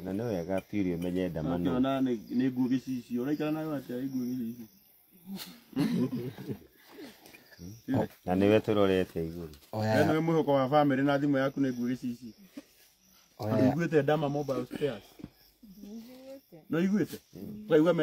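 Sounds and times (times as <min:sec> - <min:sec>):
person talking: 0:13.4 - 0:13.9.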